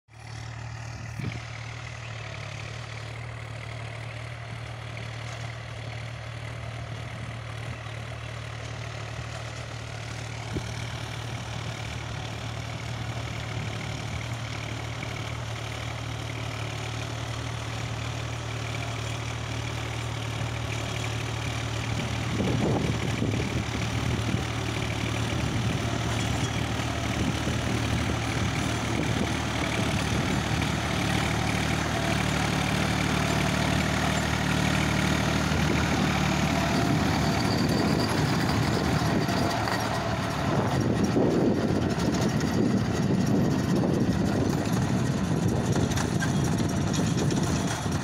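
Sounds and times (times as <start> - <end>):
tractor diesel engine running: 0.1 - 48.0.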